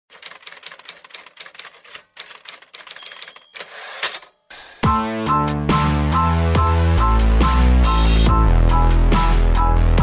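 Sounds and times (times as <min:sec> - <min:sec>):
typewriter keys clacking: 0:00.1 - 0:04.3
typewriter bell ding: 0:02.8 - 0:04.5.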